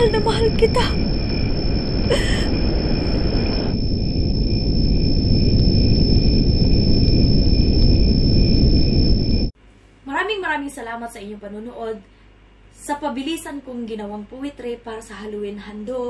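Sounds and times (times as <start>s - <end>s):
high-pitched whine: 0.0s - 9.5s
low rumbling noise: 0.0s - 9.5s.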